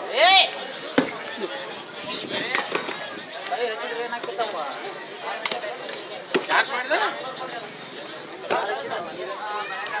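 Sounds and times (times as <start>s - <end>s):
onlookers' voices: 0.0s - 10.0s.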